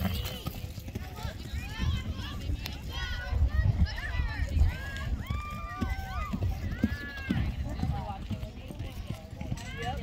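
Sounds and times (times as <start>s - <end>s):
horse galloping on dirt: 0.0s - 10.0s.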